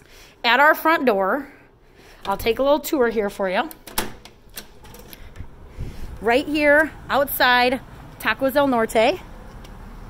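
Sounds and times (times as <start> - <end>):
wind rumble on microphone: 5.3 - 6.3.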